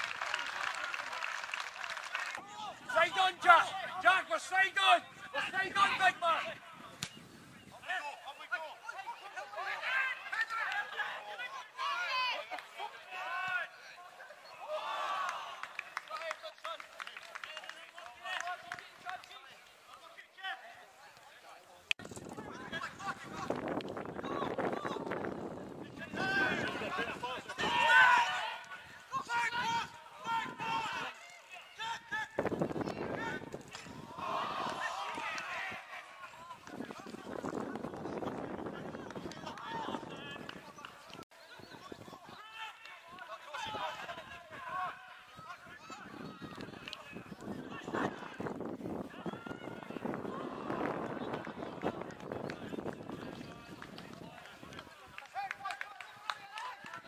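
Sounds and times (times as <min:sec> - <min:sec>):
voices shouting and calling: 0:02.4 - 0:16.0, 0:22.3 - 0:57.0
men shouting calls: 0:26.0 - 0:32.4, 0:34.0 - 0:37.1.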